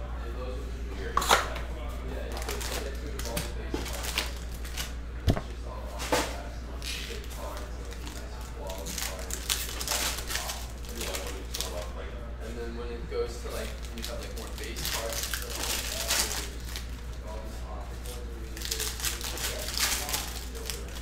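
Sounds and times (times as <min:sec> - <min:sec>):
card packs rustling and crinkling: 0:02.3 - 0:04.9, 0:06.8 - 0:11.9, 0:13.5 - 0:17.4, 0:18.0 - 0:21.0
foil pack tearing open: 0:02.3 - 0:04.9, 0:06.8 - 0:11.9, 0:13.6 - 0:17.0, 0:18.0 - 0:21.0.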